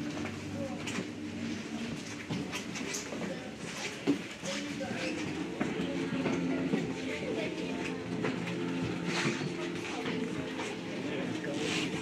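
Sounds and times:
people talking quietly: 0.0 - 12.0
background music of held notes: 5.5 - 12.0.

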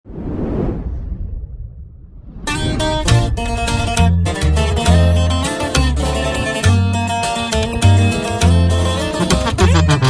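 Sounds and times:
low rumble: 0.0 - 5.3
logo whoosh: 0.1 - 4.5.

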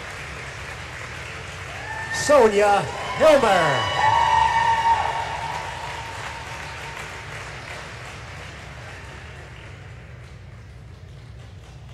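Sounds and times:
audience applause: 0.0 - 11.9.

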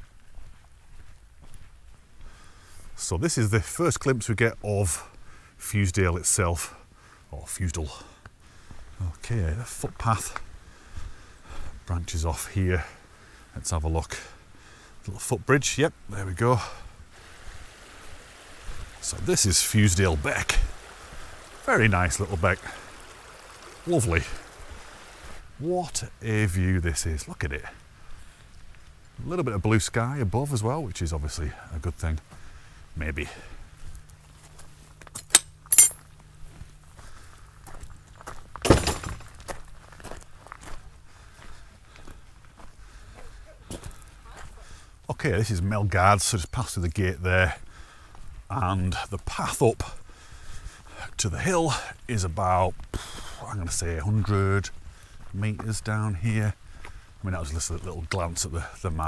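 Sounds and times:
footsteps on gravel: 0.0 - 3.0, 33.0 - 44.8, 52.2 - 59.0
stream running over stones: 15.6 - 27.9
metal gate latch clinking: 35.2 - 36.1.

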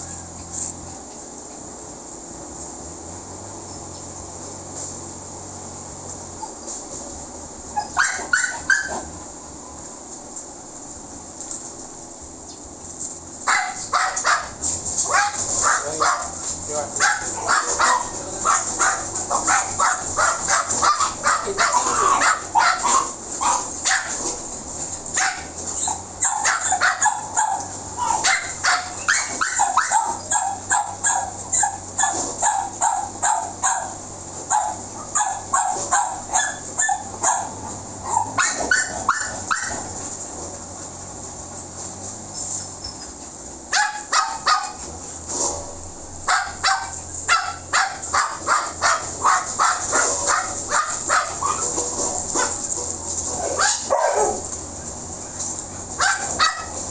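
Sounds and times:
dog barking and yipping: 7.7 - 9.2, 13.4 - 24.5, 25.1 - 40.0, 43.7 - 44.9, 46.2 - 54.6, 55.7 - 56.9.

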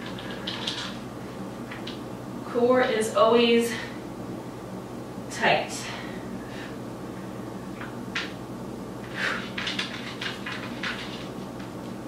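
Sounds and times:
low steady room hum: 0.0 - 12.0.

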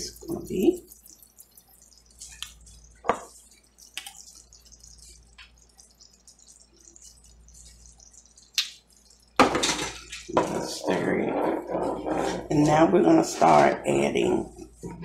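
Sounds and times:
gravy simmering with wet pops: 0.0 - 15.0.

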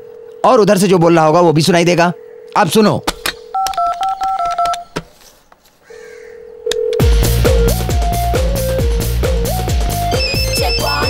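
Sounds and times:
touch-tone keypad beeps: 2.8 - 5.0, 10.0 - 11.0
telephone click: 3.0 - 5.1
telephone dial tone: 3.4 - 5.0, 6.4 - 7.1
steady line tone: 7.0 - 11.0.

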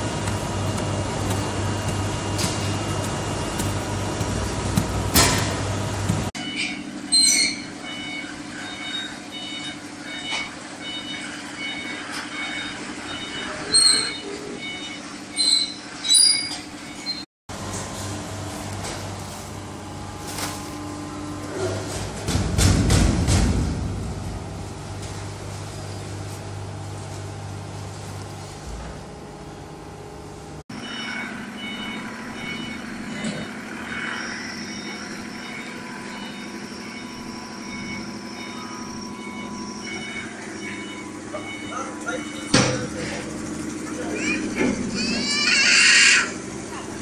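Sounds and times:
baling press hum: 0.0 - 6.3
baling press machine hum: 0.0 - 47.0
metallic squeals: 6.4 - 9.6, 13.4 - 17.2, 30.8 - 42.5.

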